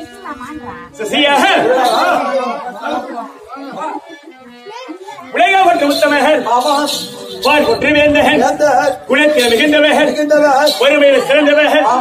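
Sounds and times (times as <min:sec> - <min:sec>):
man speaking over loudspeakers: 0:01.0 - 0:04.0, 0:05.3 - 0:12.0.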